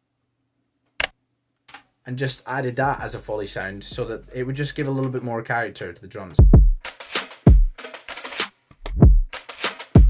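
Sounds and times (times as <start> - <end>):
deep kick drums: 4.0 - 4.2, 6.4 - 6.8, 7.5 - 7.8, 8.9 - 9.3
noisy snare hits: 6.8 - 8.5, 9.3 - 10.0.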